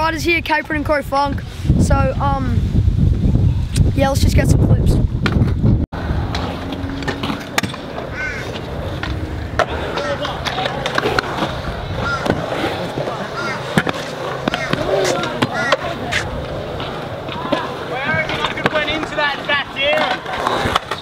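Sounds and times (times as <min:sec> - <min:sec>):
scooter wheels rolling on concrete: 0:05.2 - 0:21.0
scooters clacking on concrete: 0:06.2 - 0:21.0.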